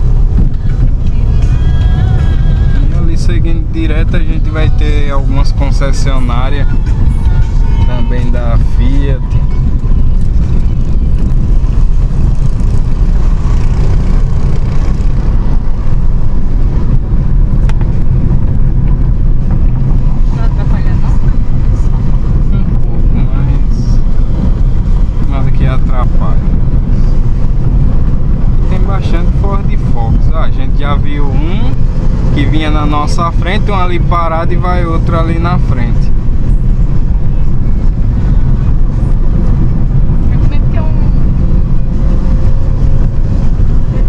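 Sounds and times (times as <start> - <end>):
car road and engine noise: 0.0 - 44.0
man speaking: 2.8 - 6.8, 7.8 - 9.3.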